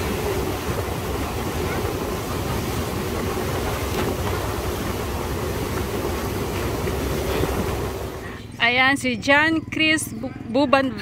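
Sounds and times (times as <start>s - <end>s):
water rushing past hull: 0.0s - 8.4s
boat engine droning: 0.0s - 11.0s.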